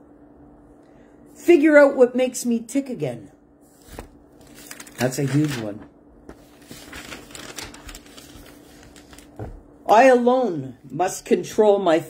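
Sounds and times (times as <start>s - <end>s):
paper crackling: 3.8s - 9.6s.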